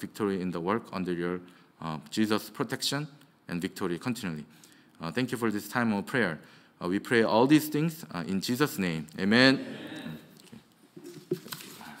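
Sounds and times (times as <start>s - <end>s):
soft rustling and shuffling: 10.2s - 12.0s.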